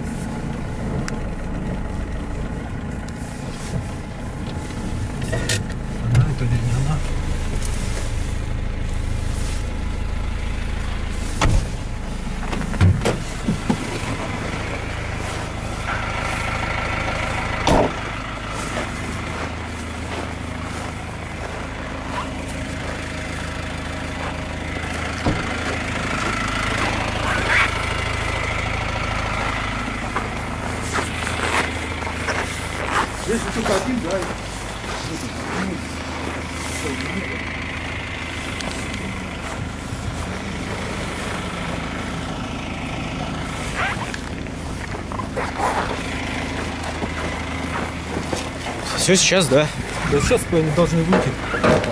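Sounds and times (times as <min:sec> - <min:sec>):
diesel engine idling: 0:00.0 - 0:51.9.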